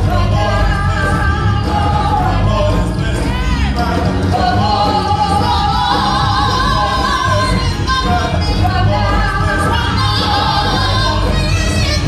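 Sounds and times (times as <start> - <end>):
low bass accompaniment: 0.0 - 12.0
vocal group singing: 0.0 - 12.0.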